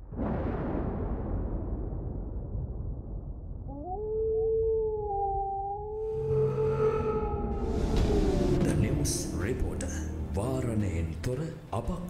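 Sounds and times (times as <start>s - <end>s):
low rumble: 0.0s - 11.4s
wolf howling: 3.7s - 10.2s.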